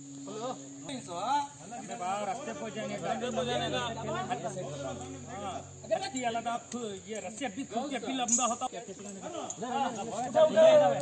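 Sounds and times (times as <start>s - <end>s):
insect drone: 0.0s - 11.0s
men talking indistinctly: 0.2s - 11.0s.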